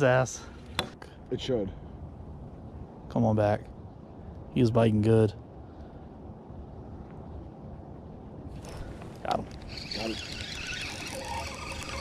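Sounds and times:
fishing reel whirring: 0:08.6 - 0:12.0.

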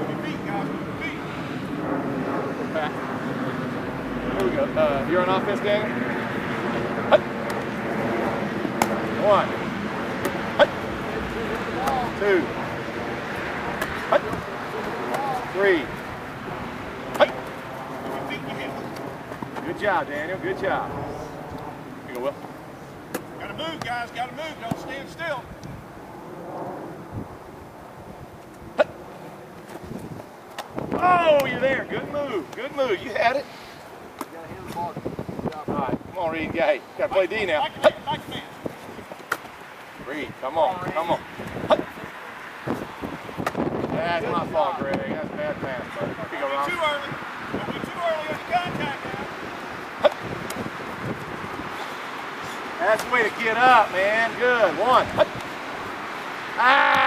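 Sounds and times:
faint voices: 0:00.0 - 0:25.5
wind noise on microphone: 0:00.0 - 0:54.1
outdoor background hiss: 0:00.0 - 0:57.0
man shouting: 0:31.0 - 0:32.4, 0:56.6 - 0:57.0.

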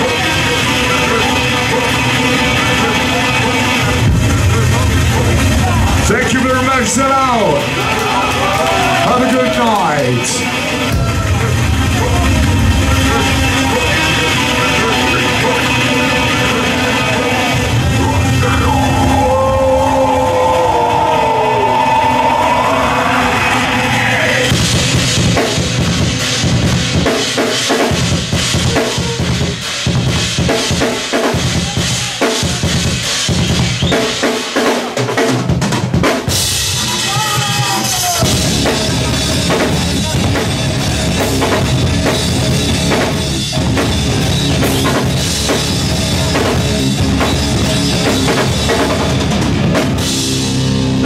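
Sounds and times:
dense drumming: 0:00.0 - 0:09.6, 0:10.6 - 0:21.3, 0:21.9 - 0:51.0
live rock band playing: 0:00.0 - 0:51.0.

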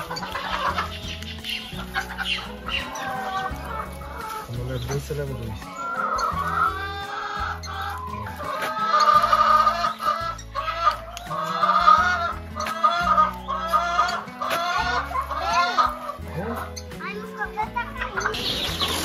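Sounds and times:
background music with bass line: 0:00.0 - 0:19.0
chickens clucking: 0:00.0 - 0:19.0.

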